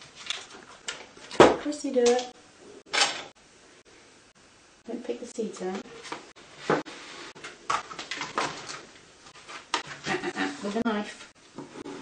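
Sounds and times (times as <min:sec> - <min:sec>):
person talking: 0:01.6 - 0:02.4, 0:04.8 - 0:05.9, 0:10.1 - 0:11.3.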